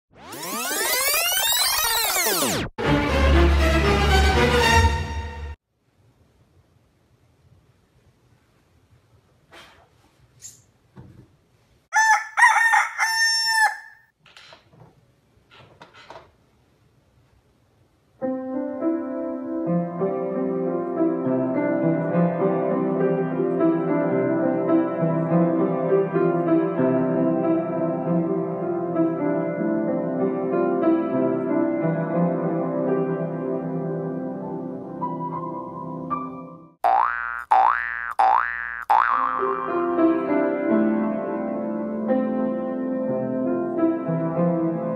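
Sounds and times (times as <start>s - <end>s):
rising pitch sound effect: 0.1s - 3.8s
rooster crowing: 11.9s - 14.0s
grand piano playing: 39.5s - 44.9s.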